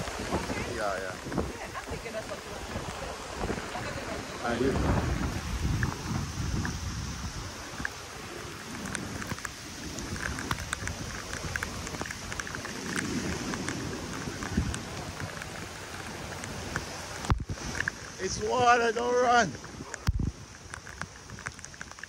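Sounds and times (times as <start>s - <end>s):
rain falling: 0.0s - 22.0s
wind rumbling on microphone: 0.0s - 22.0s.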